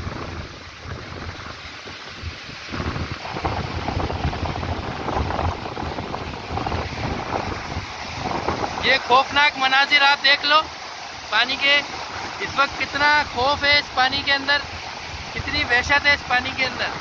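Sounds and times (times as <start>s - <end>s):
wind buffeting microphone: 0.0s - 9.5s
floodwater rushing: 0.0s - 17.0s.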